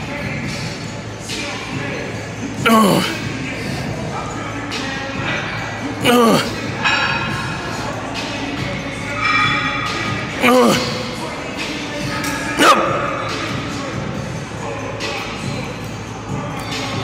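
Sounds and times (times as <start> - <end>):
background music: 0.0 - 17.0
man grunting: 2.6 - 3.2, 6.0 - 6.6, 10.4 - 11.0.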